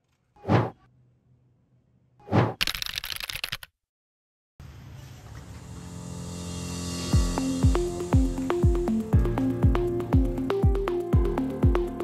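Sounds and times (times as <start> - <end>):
rapid crackling clicks: 2.6 - 3.7
background music: 5.6 - 12.0.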